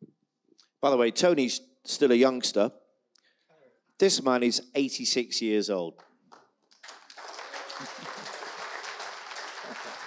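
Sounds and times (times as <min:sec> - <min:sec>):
audience applauding: 0:06.7 - 0:10.0.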